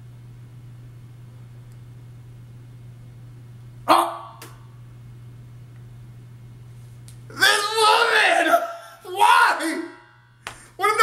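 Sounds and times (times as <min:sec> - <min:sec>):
low electrical hum: 0:00.0 - 0:11.0
man shouting: 0:03.9 - 0:04.4, 0:07.3 - 0:10.2, 0:10.8 - 0:11.0.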